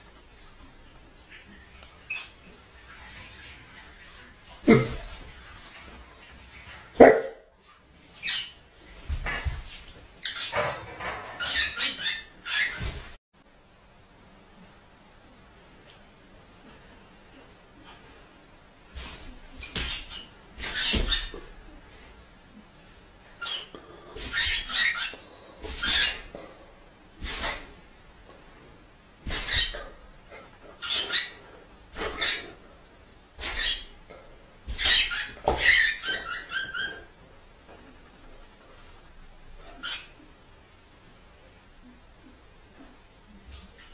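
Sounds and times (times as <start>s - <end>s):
faint background noise: 0.0s - 43.9s.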